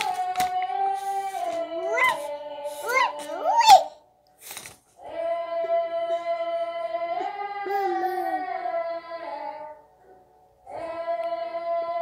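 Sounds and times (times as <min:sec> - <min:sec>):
person singing long notes: 0:00.0 - 0:03.8, 0:05.0 - 0:12.0.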